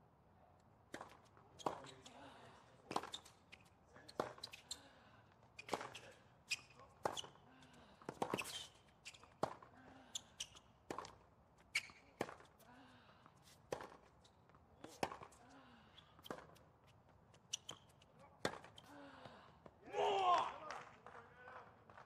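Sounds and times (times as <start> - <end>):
tennis ball bouncing: 10.8 - 11.2, 13.7 - 14.1, 17.6 - 18.9.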